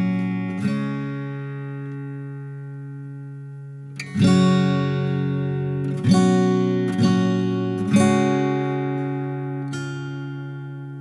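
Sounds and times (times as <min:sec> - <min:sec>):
strummed guitar chords: 0:00.0 - 0:11.0.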